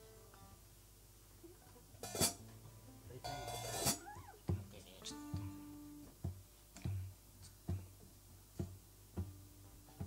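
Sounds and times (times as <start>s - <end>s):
acoustic guitars: 0.0s - 0.7s, 1.4s - 10.0s
bass drum beats: 4.2s - 10.0s.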